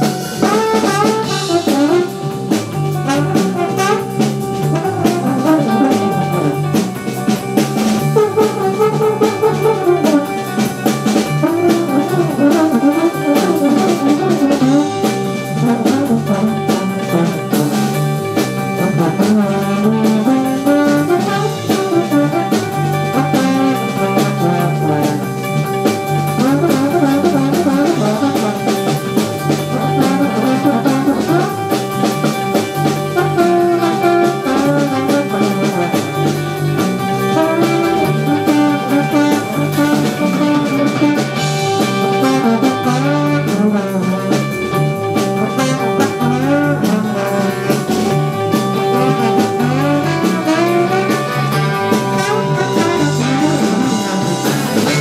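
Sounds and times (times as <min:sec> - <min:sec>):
bass guitar: 0:00.0 - 0:55.0
drum kit: 0:00.0 - 0:55.0
electric guitar: 0:00.0 - 0:55.0
horn section: 0:00.0 - 0:55.0.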